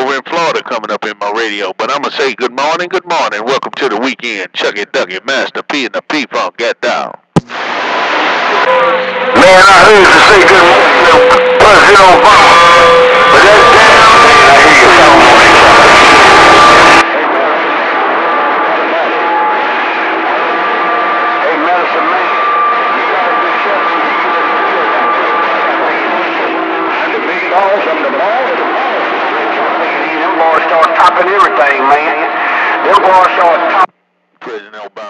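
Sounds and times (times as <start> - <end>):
radio static hiss: 6.8 - 17.0, 21.4 - 35.0.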